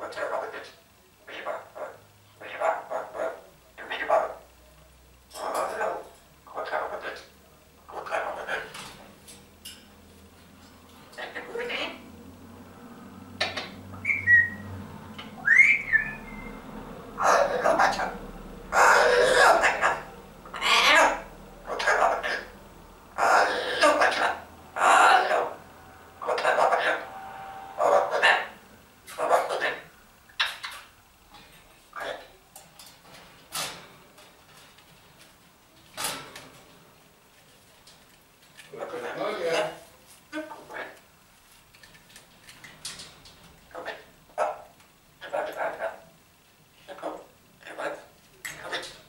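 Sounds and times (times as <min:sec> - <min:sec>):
parrot squawking: 0:00.0 - 0:04.5, 0:05.4 - 0:07.3, 0:07.9 - 0:09.0, 0:11.1 - 0:12.2, 0:13.4 - 0:30.9, 0:31.9 - 0:32.4, 0:43.7 - 0:46.1, 0:46.8 - 0:49.0.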